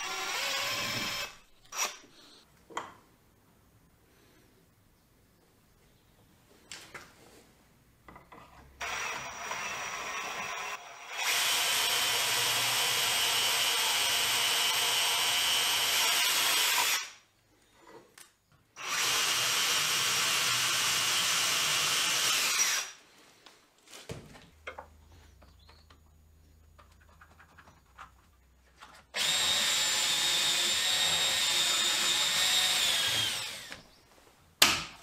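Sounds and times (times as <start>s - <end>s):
cordless drill boring into wood: 0.0s - 2.0s, 8.8s - 17.2s, 18.8s - 23.0s, 29.2s - 33.8s.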